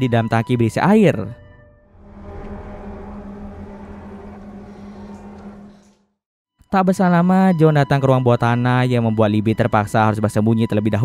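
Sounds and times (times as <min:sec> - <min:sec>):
low rumble: 0:01.8 - 0:06.2
low steady drone with held tone: 0:01.9 - 0:06.0.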